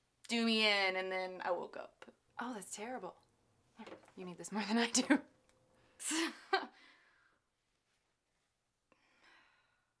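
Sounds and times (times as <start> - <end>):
faint exhale: 8.9 - 9.9.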